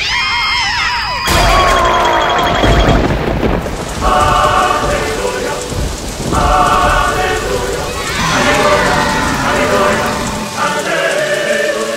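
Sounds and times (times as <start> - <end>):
crackling burning flames: 1.3 - 11.9
cartoon characters wailing: 7.9 - 10.9.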